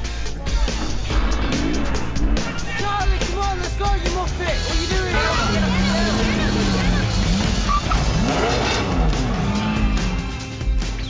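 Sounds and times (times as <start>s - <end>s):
background music: 0.0s - 11.0s
tyres squealing: 1.8s - 11.0s.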